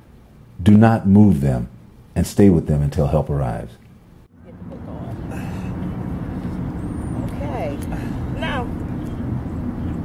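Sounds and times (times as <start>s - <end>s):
open-air hum: 0.0s - 10.0s
traffic rumble: 0.0s - 10.0s.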